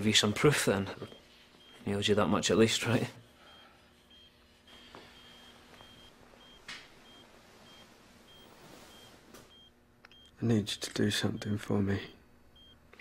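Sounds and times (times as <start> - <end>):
low room hum: 0.0 - 13.0
patient monitor beeps: 0.0 - 13.0
soft rustle: 7.3 - 9.5.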